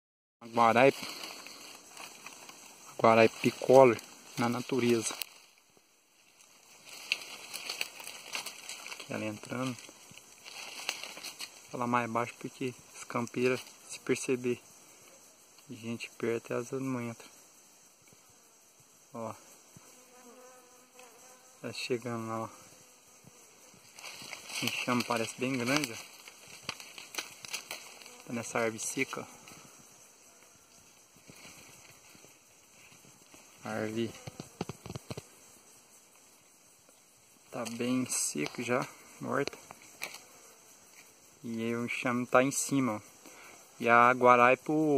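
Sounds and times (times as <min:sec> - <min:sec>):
footsteps on dry leaves and twigs: 0:00.4 - 0:05.6, 0:06.2 - 0:11.8, 0:23.7 - 0:30.0, 0:30.8 - 0:35.2
forest background hiss: 0:00.4 - 0:44.9
rustling leaf litter: 0:00.6 - 0:05.6, 0:06.2 - 0:11.7, 0:23.9 - 0:29.1
bee flight buzz: 0:17.3 - 0:37.3, 0:38.4 - 0:41.4.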